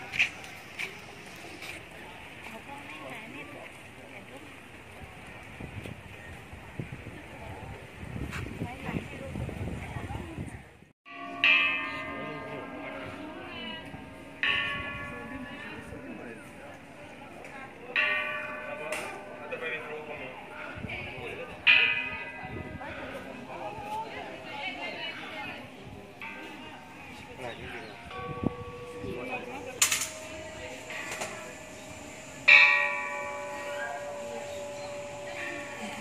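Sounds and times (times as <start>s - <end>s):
large bronze bell ringing: 11.1s - 36.0s
metal bell ringing: 28.1s - 36.0s.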